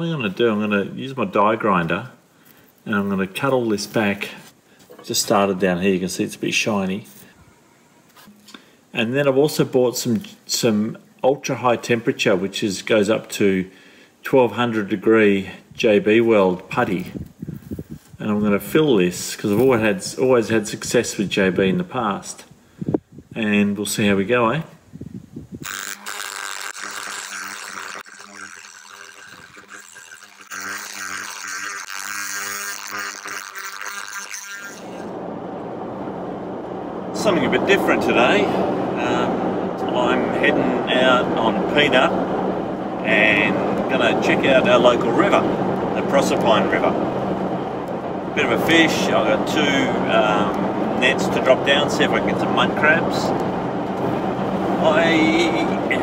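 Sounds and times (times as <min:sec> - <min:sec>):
background hiss: 0:00.0 - 0:56.0
die grinder grinding metal: 0:25.6 - 0:35.2, 0:39.0 - 0:56.0
faint hum: 0:27.3 - 0:56.0
road noise inside a car: 0:35.0 - 0:56.0.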